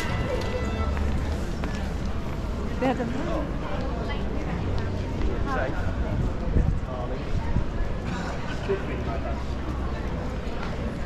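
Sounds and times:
passersby talking: 0:00.0 - 0:11.0.

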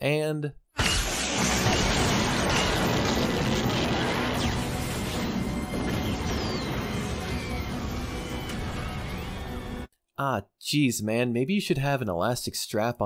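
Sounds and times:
music: 0:01.4 - 0:09.9.

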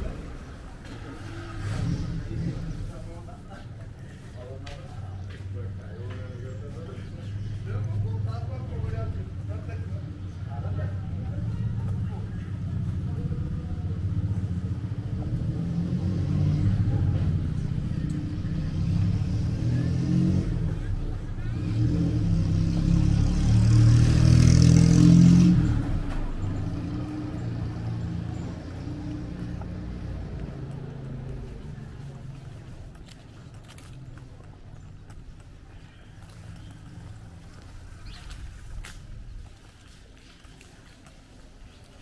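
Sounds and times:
vehicle passing close: 0:00.0 - 0:04.1, 0:10.6 - 0:35.4
street traffic: 0:00.0 - 0:42.0.

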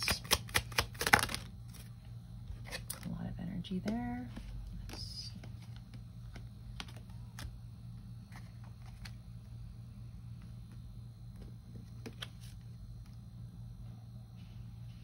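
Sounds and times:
cards clicking and tapping: 0:00.0 - 0:01.8, 0:03.8 - 0:07.6
steady low hum: 0:00.0 - 0:15.0.

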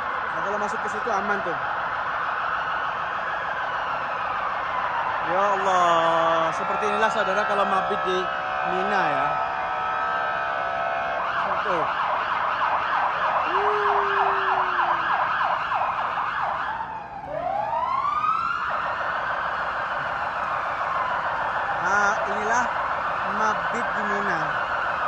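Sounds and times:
police siren: 0:00.0 - 0:25.0.

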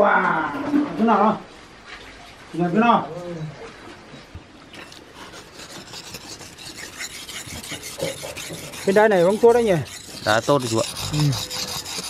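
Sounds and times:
knife scraping on sharpening stone: 0:04.8 - 0:12.0.

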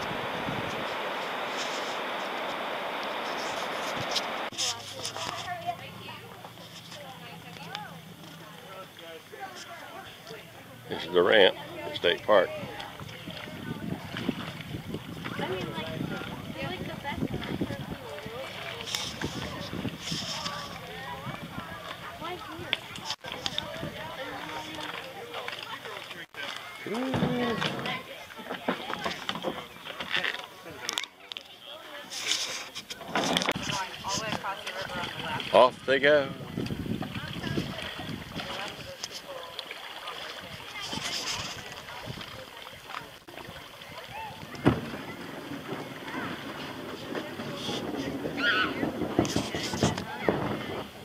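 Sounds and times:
river water rushing over rocks: 0:00.0 - 0:04.6
faint voices: 0:00.0 - 0:51.0.

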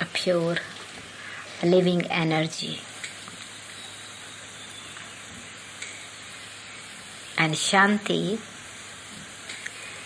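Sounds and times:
background hiss: 0:00.0 - 0:10.0
faint click: 0:09.5 - 0:09.8.

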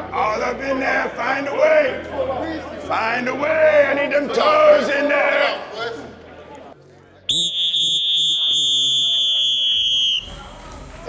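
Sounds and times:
shrill whistle blast: 0:07.3 - 0:10.4.

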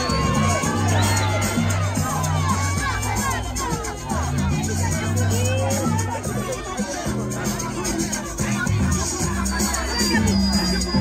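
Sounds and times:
crowd shouting and cheering: 0:00.0 - 0:11.0
dance music with deep bass: 0:00.0 - 0:11.0.

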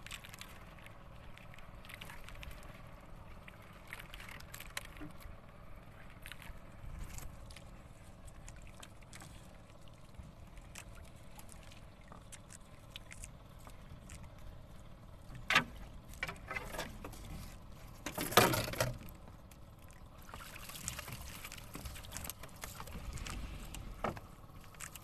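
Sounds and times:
low steady water wash: 0:00.0 - 0:25.0
water splashing and dripping: 0:19.8 - 0:23.4.

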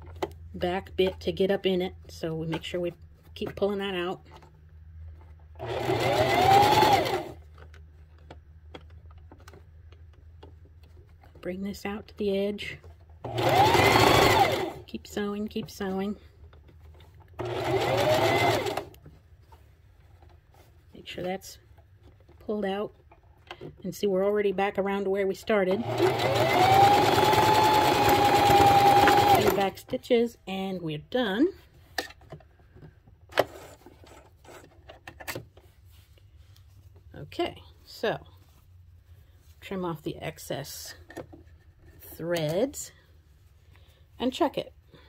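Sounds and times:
sewing machine stitching: 0:05.6 - 0:07.4, 0:13.2 - 0:14.8, 0:17.4 - 0:19.0, 0:25.6 - 0:29.8
faint clicks of fabric handling: 0:35.5 - 0:39.8.

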